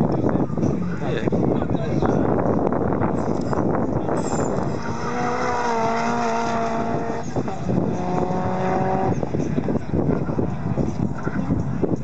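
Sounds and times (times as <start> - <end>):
race car engine under load: 2.5 - 11.8.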